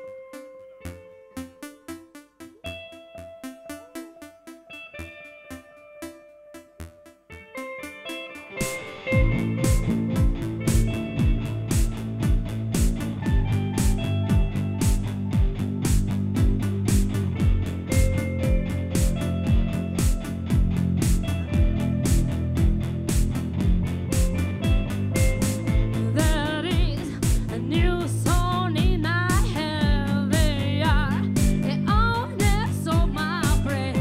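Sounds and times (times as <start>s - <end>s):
electric guitar: 0.0s - 34.0s
drums: 8.4s - 34.0s
bass guitar: 8.6s - 34.0s
kick drum beat: 8.6s - 34.0s.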